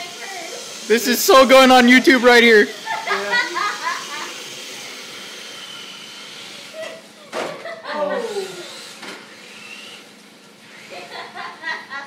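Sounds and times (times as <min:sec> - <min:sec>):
toy car electric motor whining: 0:00.0 - 0:11.5.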